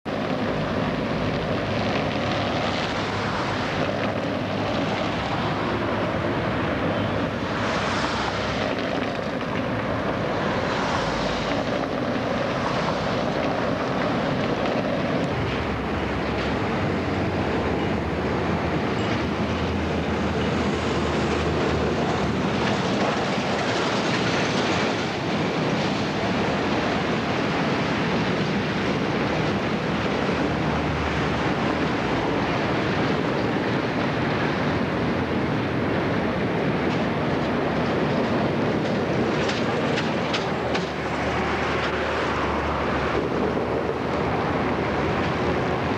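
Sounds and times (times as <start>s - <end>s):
road traffic: 0.0s - 45.9s
tram passing: 0.1s - 45.9s.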